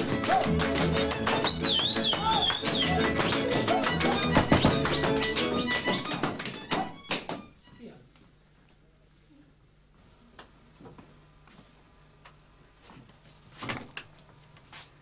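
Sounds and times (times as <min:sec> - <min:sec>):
dancers stamping: 0:00.0 - 0:07.5
folk dance music on strings: 0:00.0 - 0:07.8.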